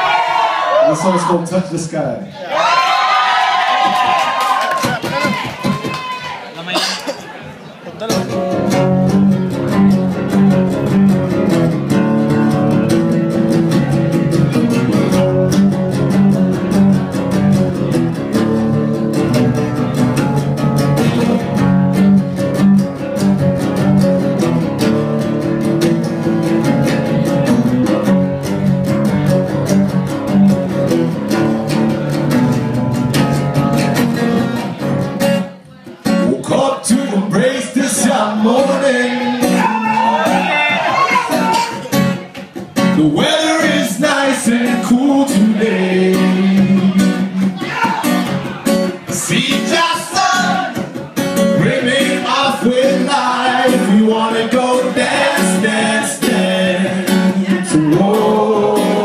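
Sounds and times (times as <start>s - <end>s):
acoustic guitar chords and picking: 6.7s - 59.0s.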